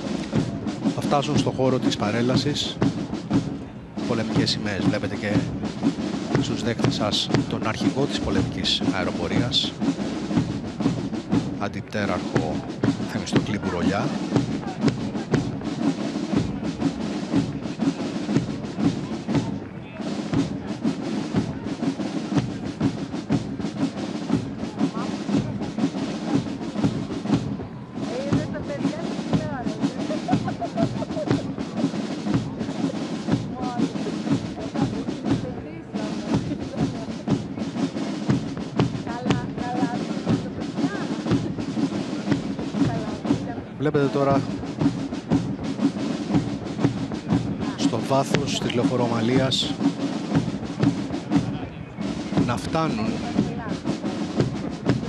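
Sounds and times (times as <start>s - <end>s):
marching drums: 0.0s - 55.0s.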